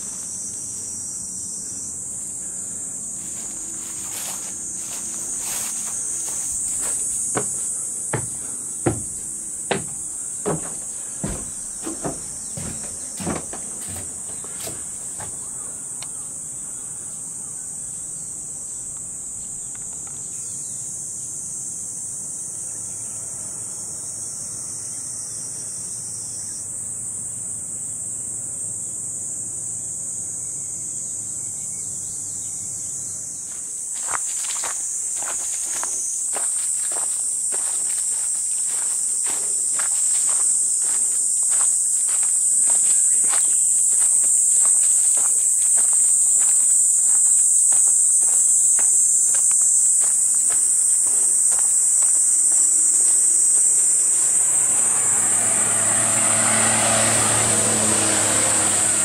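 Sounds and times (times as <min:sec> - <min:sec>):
high-pitched insect chorus: 0:00.0 - 0:59.0
footsteps on dry leaves: 0:03.1 - 0:15.5, 0:33.5 - 0:54.6.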